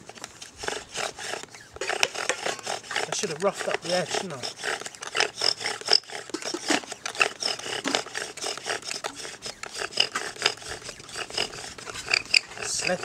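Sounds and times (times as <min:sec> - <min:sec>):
bow drill scraping wood: 0:00.0 - 0:13.0
high squeaks of wood friction: 0:00.0 - 0:13.0.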